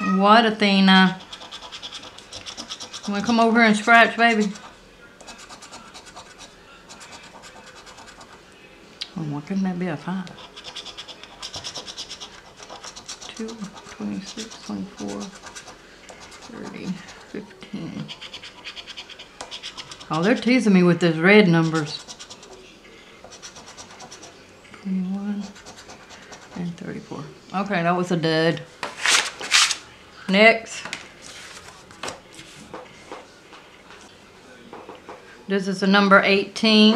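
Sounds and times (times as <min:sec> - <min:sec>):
coin scraping scratch-off ticket: 0:01.0 - 0:08.4, 0:10.4 - 0:17.2, 0:18.1 - 0:20.4, 0:21.6 - 0:22.5.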